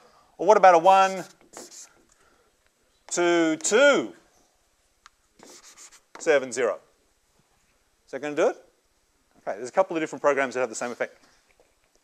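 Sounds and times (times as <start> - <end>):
chalk scratching on blackboard: 1.0 - 2.1, 5.4 - 6.3
chalk tapping on blackboard: 1.2 - 2.1, 5.4 - 6.3.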